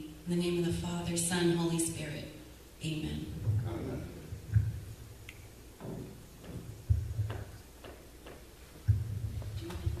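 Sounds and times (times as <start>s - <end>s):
dull low thumps: 3.2s - 7.6s, 8.8s - 10.0s.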